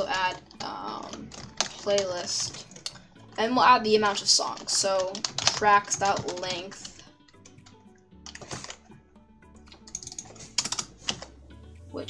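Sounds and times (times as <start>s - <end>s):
soft background music: 0.0s - 12.0s
keyboard typing: 4.0s - 8.8s, 9.7s - 11.4s.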